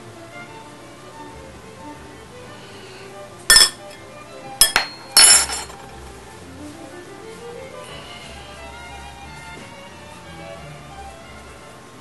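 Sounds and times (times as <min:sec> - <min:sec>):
spoon clinking against dish: 0:03.5 - 0:04.0, 0:04.6 - 0:05.8.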